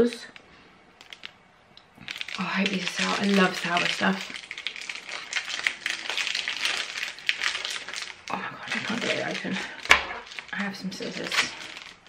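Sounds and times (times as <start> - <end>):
plastic sweet packet crinkling: 0.0 - 12.0.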